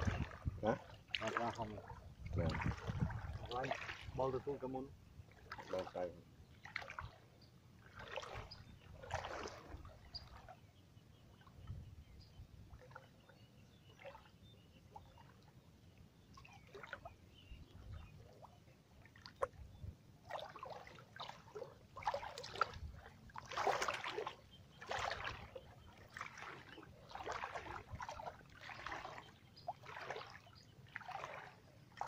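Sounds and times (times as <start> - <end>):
water sloshing and splashing: 0.0 - 11.9, 12.6 - 32.0.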